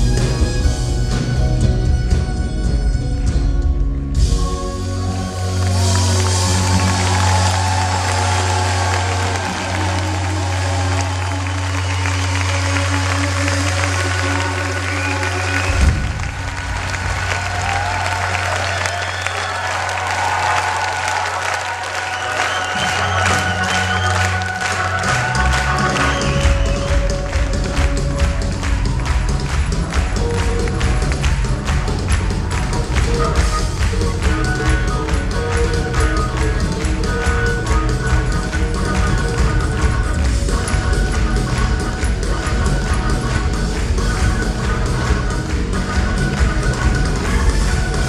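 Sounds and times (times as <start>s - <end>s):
live rock band playing: 0.0s - 48.0s
audience applauding: 4.9s - 48.0s.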